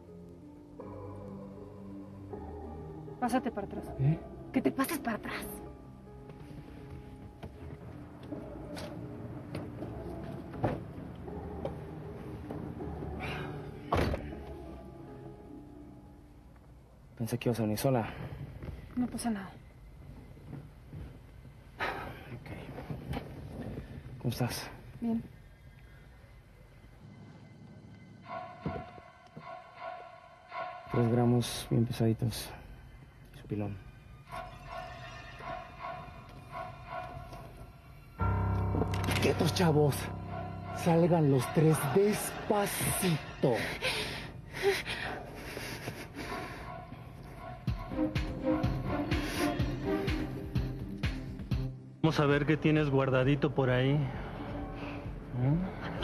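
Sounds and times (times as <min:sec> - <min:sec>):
background score music: 0:00.0 - 0:56.0
person breathing: 0:43.5 - 0:47.2, 0:49.1 - 0:49.8.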